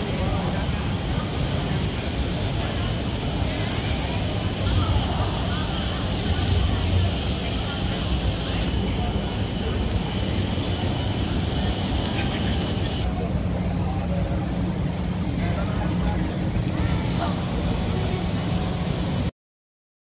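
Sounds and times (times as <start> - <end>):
crowd noise: 0.0 - 19.3
low rumble of traffic: 0.0 - 19.3
passers-by talking: 0.0 - 19.3.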